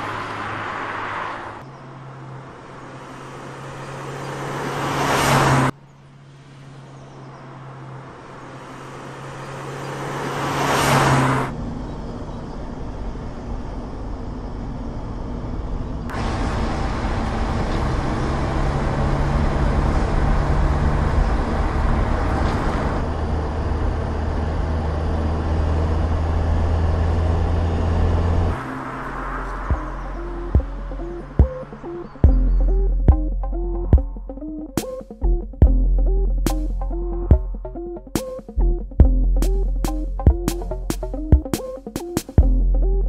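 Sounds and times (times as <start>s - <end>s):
car passing close: 0.0s - 34.1s
car engine hum: 0.0s - 41.6s
tyre and road noise: 0.0s - 43.0s.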